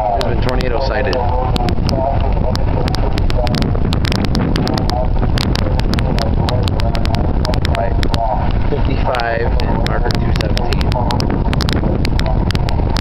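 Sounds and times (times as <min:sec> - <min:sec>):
distant public-address voice: 0:00.0 - 0:03.8, 0:04.6 - 0:11.3
heavy rain: 0:00.0 - 0:13.0
sharp clicks: 0:00.0 - 0:13.0
wind on microphone: 0:00.0 - 0:13.0.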